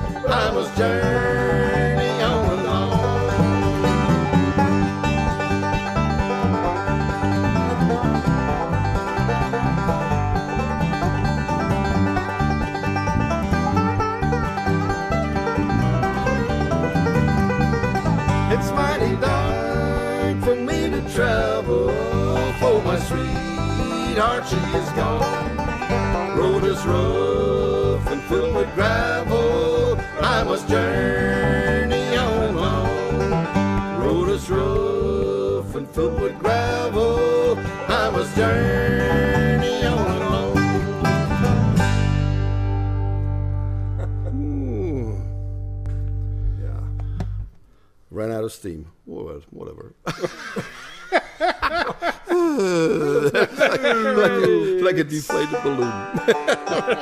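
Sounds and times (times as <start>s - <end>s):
banjo: 0.0s - 47.5s, 52.9s - 57.0s
acoustic guitar: 0.0s - 47.9s, 52.4s - 57.0s
bass guitar: 0.0s - 47.9s, 52.4s - 57.0s.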